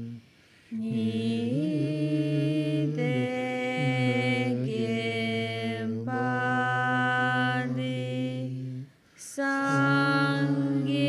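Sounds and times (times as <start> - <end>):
low voice chanting prayer: 0.0 - 11.0.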